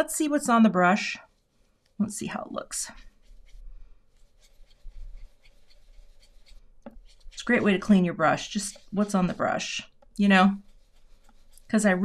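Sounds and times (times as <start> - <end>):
brush scrubbing on cardstock: 2.9 - 12.0.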